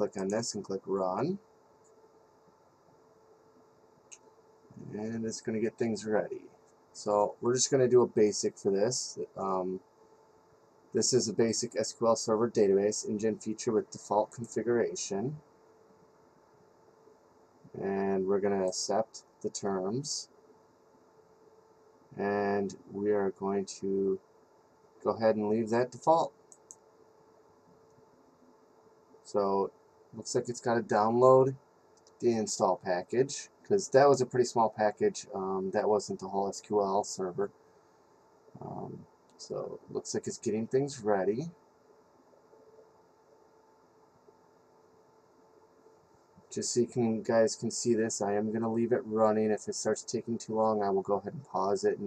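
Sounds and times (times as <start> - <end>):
man's voice: 0.0 - 1.4, 4.8 - 6.4, 7.0 - 9.8, 11.0 - 15.4, 17.8 - 20.2, 25.0 - 26.3, 29.3 - 31.6, 32.2 - 37.5, 38.6 - 41.5, 46.5 - 52.0
steady low hum: 0.0 - 52.0.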